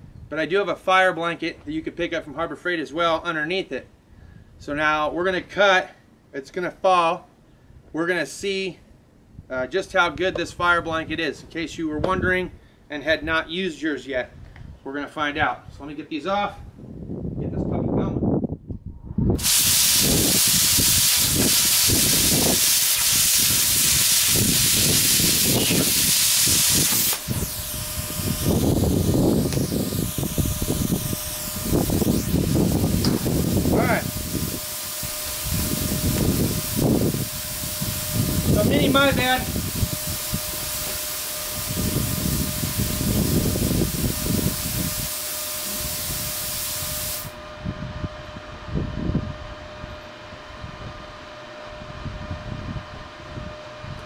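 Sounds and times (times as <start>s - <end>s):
air hissing through torch: 19.4s - 47.4s
plasma cutter arc hissing: 19.4s - 47.4s.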